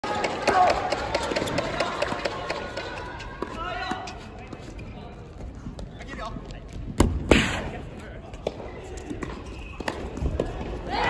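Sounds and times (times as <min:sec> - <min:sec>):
voices in a hall: 0:00.0 - 0:11.0
shoes squeaking on court: 0:03.4 - 0:06.2, 0:08.6 - 0:10.6.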